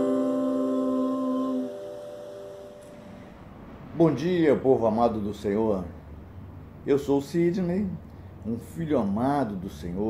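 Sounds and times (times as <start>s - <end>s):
acoustic guitar chord ringing: 0.0s - 3.4s.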